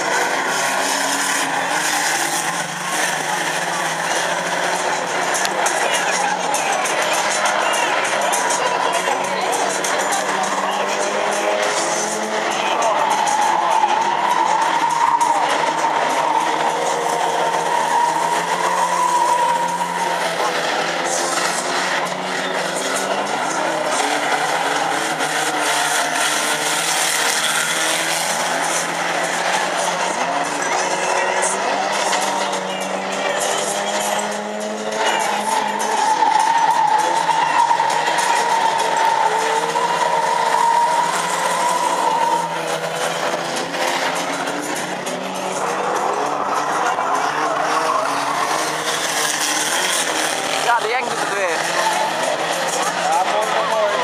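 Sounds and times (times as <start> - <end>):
racing car engines revving: 0.0 - 54.0.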